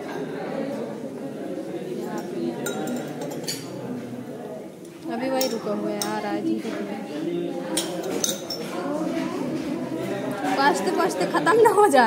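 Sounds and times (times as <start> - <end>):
glassware clinking: 2.0 - 3.7, 5.4 - 6.2, 7.7 - 8.7.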